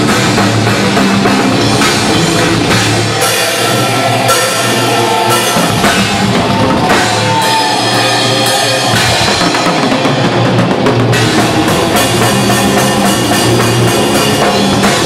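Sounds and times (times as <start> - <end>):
distorted guitars and bass: 0.0 - 15.0
drums with cymbals: 0.0 - 15.0.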